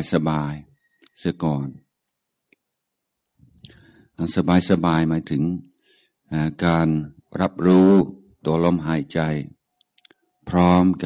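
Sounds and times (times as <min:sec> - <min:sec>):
man speaking calmly into microphone: 0:00.0 - 0:02.0, 0:03.6 - 0:11.0.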